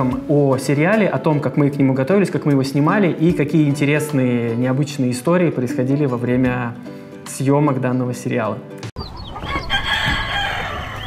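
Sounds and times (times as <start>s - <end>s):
rooster crowing: 9.4s - 11.0s.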